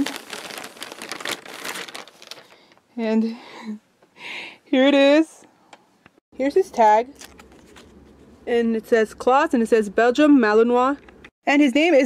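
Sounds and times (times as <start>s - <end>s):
plastic mailer bag crinkling: 0.0s - 2.8s.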